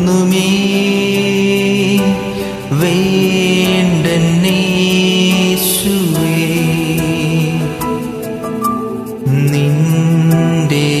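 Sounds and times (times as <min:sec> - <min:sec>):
karaoke backing track: 0:00.0 - 0:11.0
man singing devotional song: 0:00.0 - 0:11.0.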